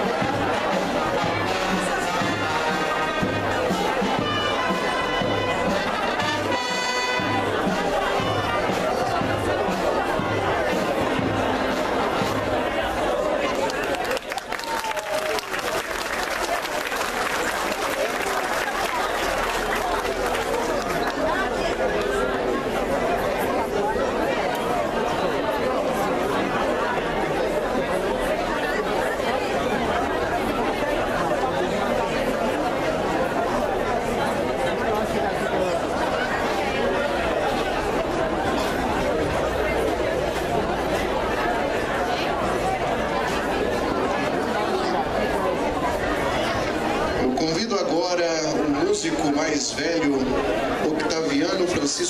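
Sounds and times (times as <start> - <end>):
crowd chatter: 0.0 - 52.0.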